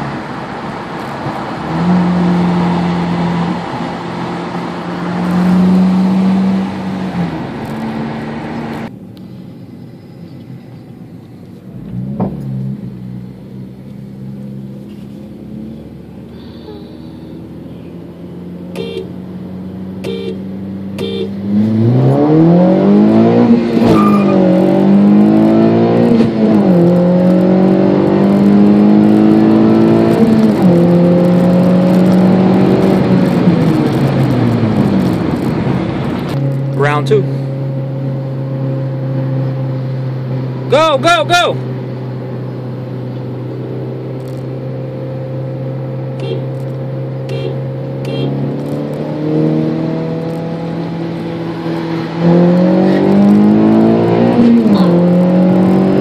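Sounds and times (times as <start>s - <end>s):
car engine accelerating: 0.0s - 56.0s.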